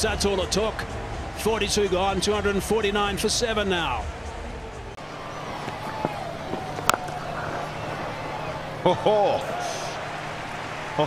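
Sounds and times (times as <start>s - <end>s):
stadium crowd noise: 0.0s - 11.0s
cricket bat striking ball: 5.2s - 8.8s.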